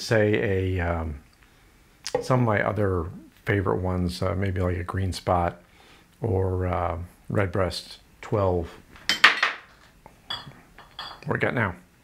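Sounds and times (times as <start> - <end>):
glass bottles clinking: 9.1 - 11.3.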